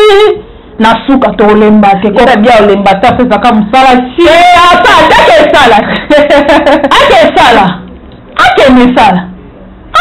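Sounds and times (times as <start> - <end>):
woman speaking animatedly: 0.0 - 7.8, 8.4 - 9.3.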